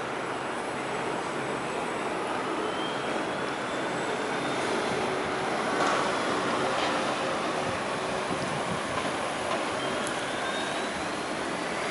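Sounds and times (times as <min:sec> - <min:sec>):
city street traffic roar: 0:00.0 - 0:11.9.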